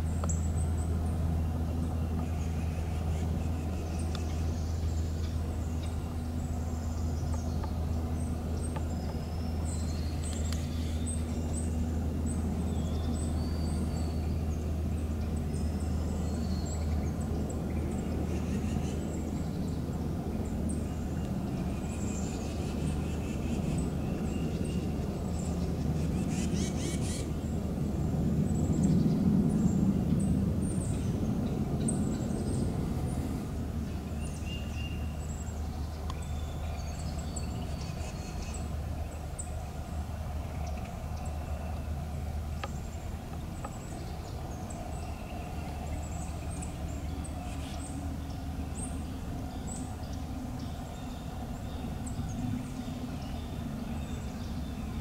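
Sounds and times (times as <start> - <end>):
small birds chirping: 0.0 - 55.0
steady low rumble: 0.0 - 55.0.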